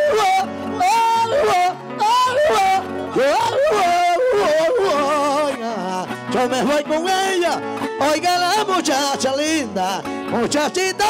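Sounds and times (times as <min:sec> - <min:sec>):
guitars playing: 0:00.0 - 0:11.0
man singing wordless melisma: 0:00.0 - 0:11.0.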